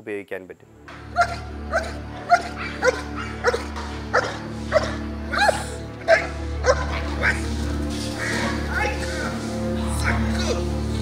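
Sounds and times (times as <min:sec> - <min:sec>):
background music: 0:00.0 - 0:11.0
dog barking: 0:01.2 - 0:09.4.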